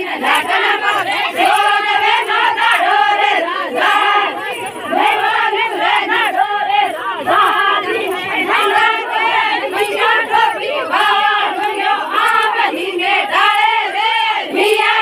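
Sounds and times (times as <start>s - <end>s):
women singing together: 0.0s - 15.0s.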